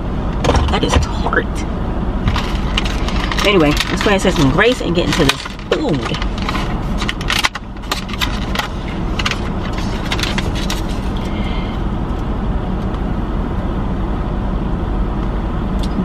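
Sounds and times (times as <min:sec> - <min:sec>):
car engine hum: 0:00.0 - 0:16.0
rustling: 0:02.3 - 0:11.4.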